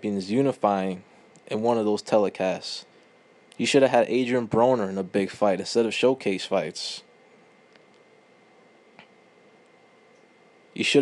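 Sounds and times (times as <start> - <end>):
thin steady high whine: 0.0 - 11.0.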